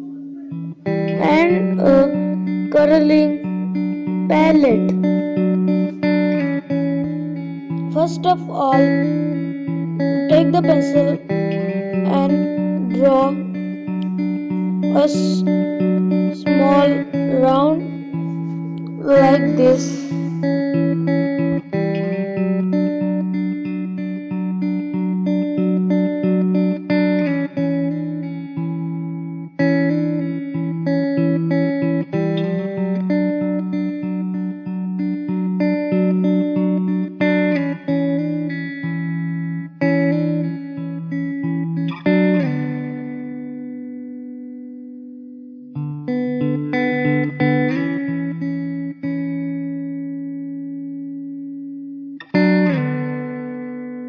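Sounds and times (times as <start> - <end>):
plucked guitar picking: 0.0 - 54.0.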